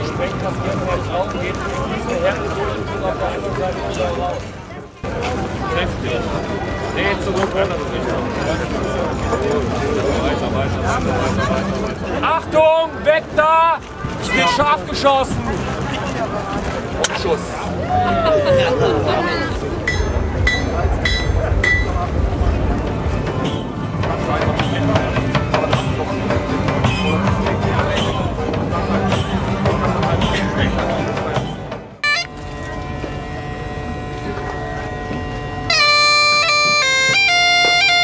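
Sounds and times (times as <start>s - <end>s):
crowd voices talking: 0.0s - 38.0s
background music: 17.0s - 38.0s.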